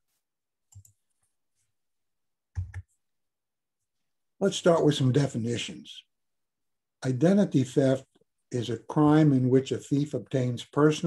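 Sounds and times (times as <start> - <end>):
computer mouse clicks: 0.7 - 1.0, 2.6 - 2.9.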